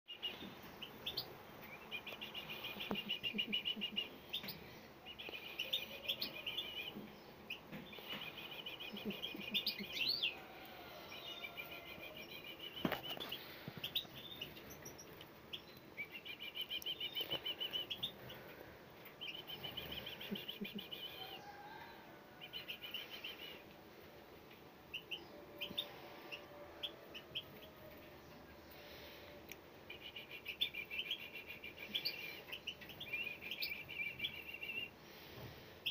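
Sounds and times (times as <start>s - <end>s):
nestlings chirping: 0.1s - 21.6s, 22.4s - 23.7s, 24.5s - 35.9s.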